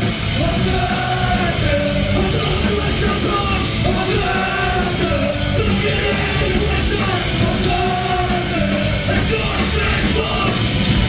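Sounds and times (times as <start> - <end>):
punk rock band playing: 0.0 - 11.0
singer yelling into microphone: 0.4 - 10.8.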